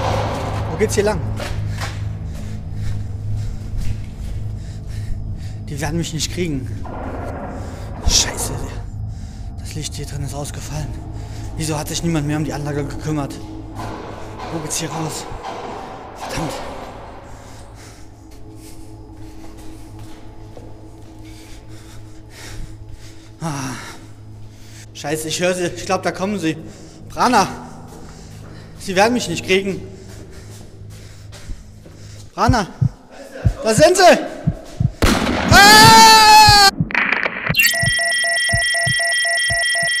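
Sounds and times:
low steady hum: 0.0s - 25.0s
sustained tone: 0.0s - 30.9s
dull low thumps: 30.3s - 37.9s
electronic signal lost tone: 37.5s - 40.0s.

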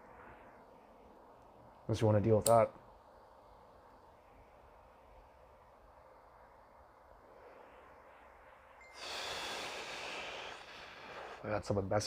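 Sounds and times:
faint inhaling breath: 7.2s - 11.5s
long breathy exhale: 8.8s - 11.4s.

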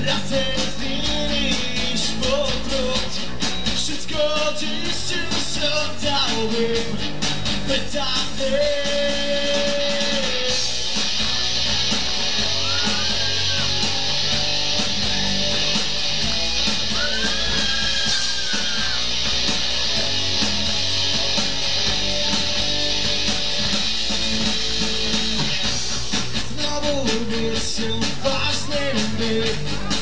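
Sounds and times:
bass guitar: 0.0s - 30.0s
drums: 0.0s - 30.0s
electric guitars: 0.0s - 30.0s.

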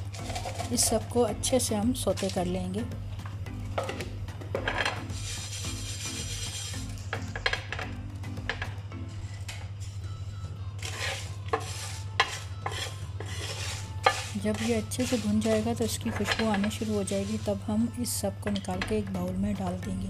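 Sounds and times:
spatula scraping spices in pan: 0.0s - 0.9s, 4.6s - 7.8s, 10.8s - 17.7s.

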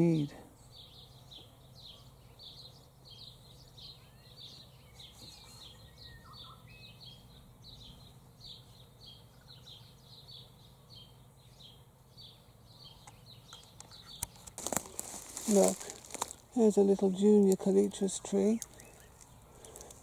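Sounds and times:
birds chirping: 0.0s - 20.0s
whistled bird notes: 4.9s - 7.2s.

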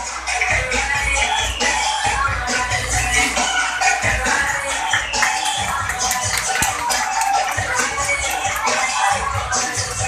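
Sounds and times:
dance music: 0.0s - 10.0s.

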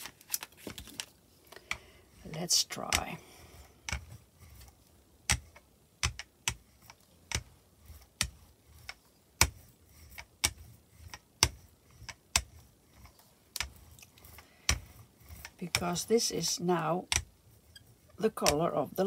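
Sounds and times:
rubber brayer rolling through paint: 0.0s - 19.0s.

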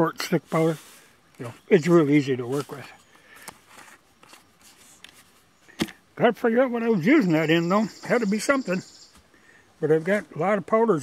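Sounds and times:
plastic bottle handling noise: 2.4s - 6.0s.

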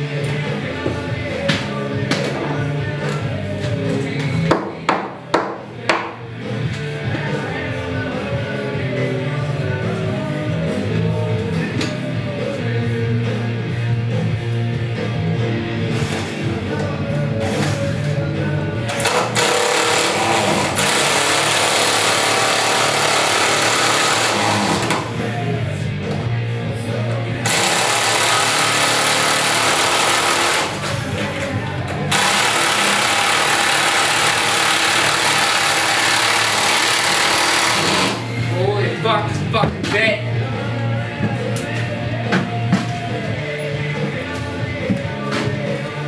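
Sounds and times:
power drill running: 18.9s - 25.2s, 27.4s - 31.1s, 32.1s - 38.4s.

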